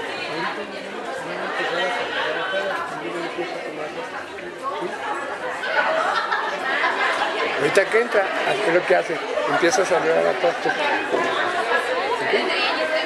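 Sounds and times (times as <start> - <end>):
crowd chatter in a hall: 0.0 - 13.0.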